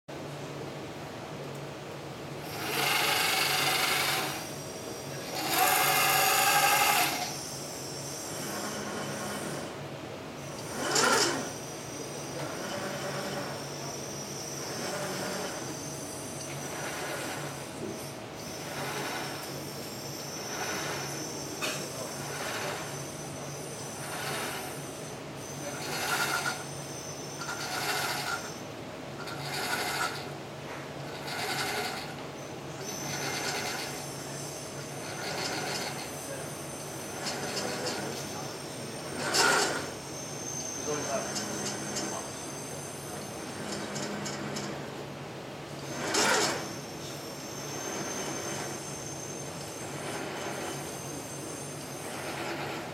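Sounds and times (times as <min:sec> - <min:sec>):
steady low hum: 0:00.1 - 0:52.9
robot arm motors whirring: 0:02.4 - 0:09.8, 0:10.4 - 0:52.9.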